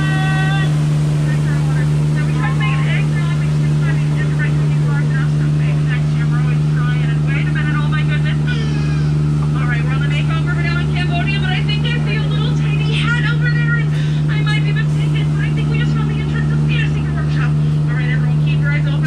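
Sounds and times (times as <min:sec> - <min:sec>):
boat motor humming: 0:00.0 - 0:19.0.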